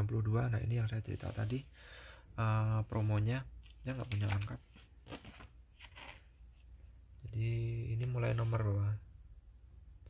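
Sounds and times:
plastic binder sleeve rustling: 0:02.9 - 0:06.7.

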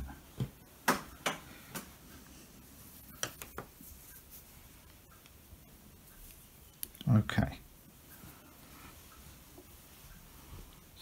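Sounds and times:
metal knitting needles clicking: 0:05.1 - 0:07.2.

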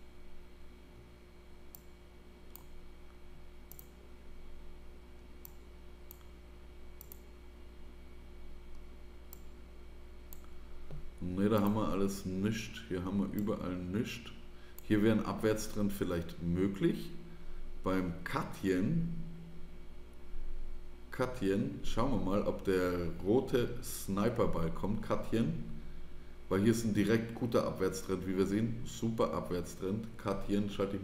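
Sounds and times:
steady low hum: 0:00.0 - 0:31.0
computer mouse clicks: 0:01.7 - 0:04.0, 0:05.4 - 0:06.4, 0:07.0 - 0:07.3, 0:08.7 - 0:09.6, 0:10.3 - 0:11.8.

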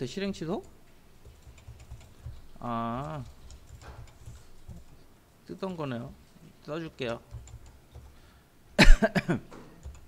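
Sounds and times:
speech: 0:00.0 - 0:00.7, 0:02.6 - 0:03.3, 0:05.5 - 0:07.3
person coughing: 0:08.8 - 0:09.5.

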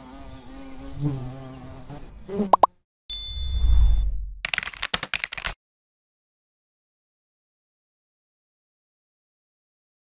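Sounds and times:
bright ding: 0:03.1 - 0:04.0
rapid run of clicks: 0:04.4 - 0:05.6.

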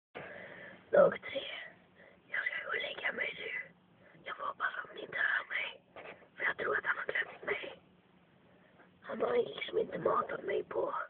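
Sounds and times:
person whispering: 0:01.0 - 0:05.8, 0:06.4 - 0:07.8.

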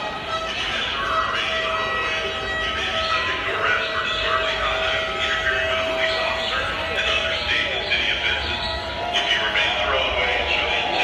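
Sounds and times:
protesters chanting and shouting: 0:00.0 - 0:11.0.

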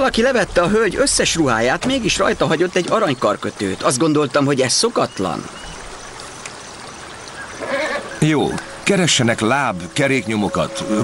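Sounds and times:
outdoor background hiss: 0:00.0 - 0:11.0.

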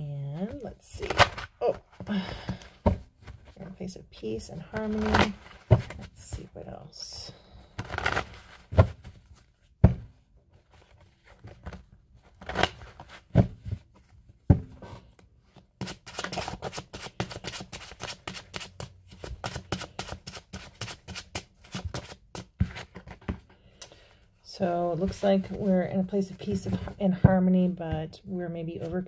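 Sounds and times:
cards being shuffled: 0:00.4 - 0:02.0, 0:07.8 - 0:09.5, 0:15.8 - 0:23.4.

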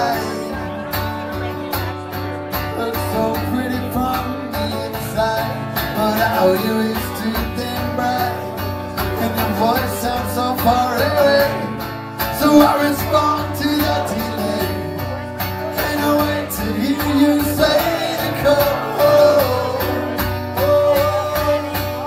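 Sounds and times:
man singing: 0:00.0 - 0:22.0
strummed acoustic guitar: 0:00.0 - 0:22.0.

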